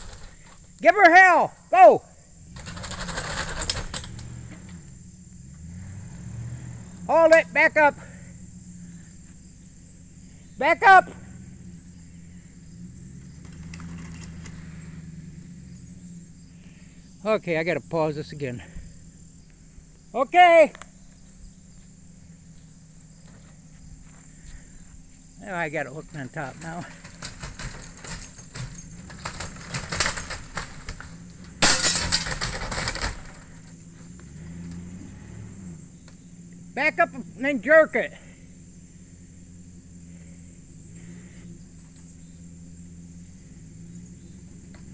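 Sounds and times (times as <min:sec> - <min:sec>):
crash of breaking wood: 0:00.0 - 0:00.7, 0:02.5 - 0:04.9, 0:26.3 - 0:33.8
wood cracking and snapping: 0:00.0 - 0:00.8, 0:02.5 - 0:04.8, 0:26.5 - 0:33.8
crickets chirping: 0:00.0 - 0:44.9
vehicle engine running low: 0:00.0 - 0:44.9.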